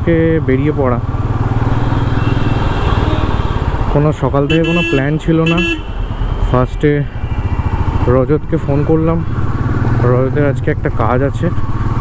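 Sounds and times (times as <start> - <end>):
motorcycle engine cruising: 0.0 - 12.0.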